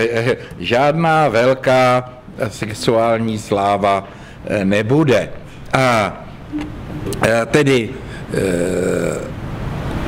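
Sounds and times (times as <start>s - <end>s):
man's drawn-out hesitation sound: 0.9s - 9.3s.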